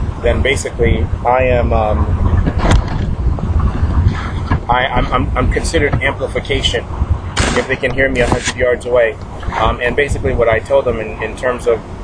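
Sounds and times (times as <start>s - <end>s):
wind buffeting microphone: 0.0s - 12.0s
brief sharp sound: 7.4s - 8.6s.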